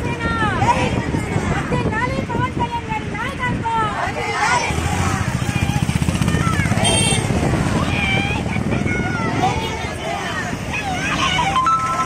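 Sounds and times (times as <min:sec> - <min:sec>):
women calling out: 0:07.8 - 0:12.0.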